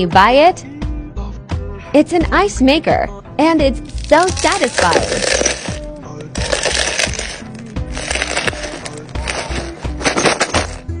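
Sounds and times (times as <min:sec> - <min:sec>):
background music with bass line: 0:00.0 - 0:11.0
ice cubes crackling and clinking: 0:03.8 - 0:10.9.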